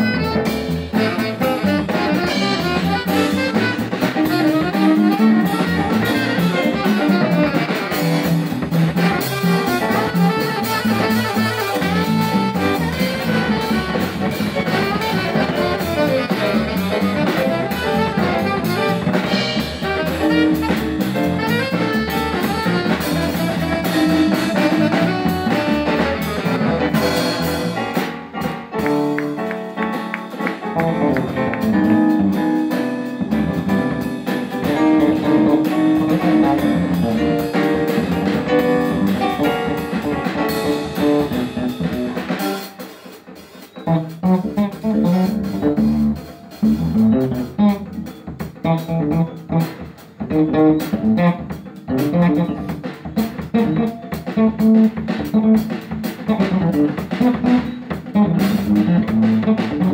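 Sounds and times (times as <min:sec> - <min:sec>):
electric bass guitar: 0:00.0 - 0:42.6, 0:43.8 - 0:59.9
drum kit: 0:00.0 - 0:59.9.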